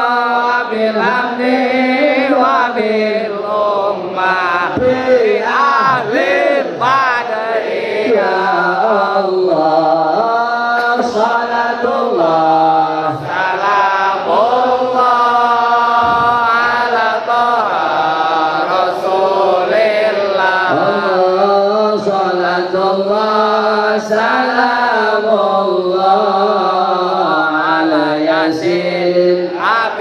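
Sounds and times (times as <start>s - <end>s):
man singing devotional chant: 0.0s - 30.0s.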